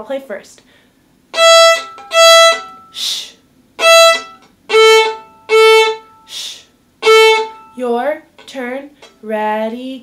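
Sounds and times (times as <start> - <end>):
violin bowed on open strings: 1.3 - 3.2, 3.8 - 6.4, 7.0 - 7.8.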